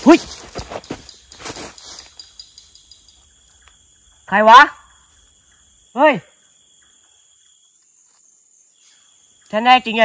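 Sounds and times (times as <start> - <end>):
night insects chirring: 0.0 - 10.0.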